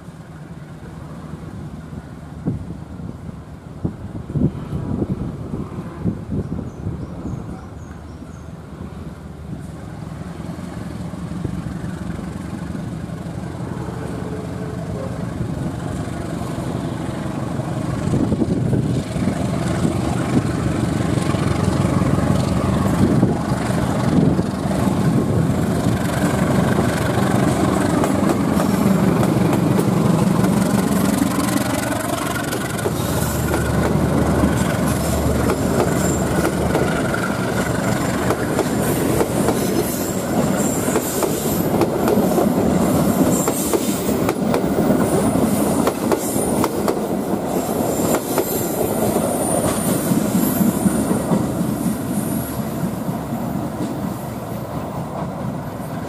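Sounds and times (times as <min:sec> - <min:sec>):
locomotive engine: 0:08.9 - 0:56.0
train wheels clattering over rail joints: 0:18.5 - 0:52.2.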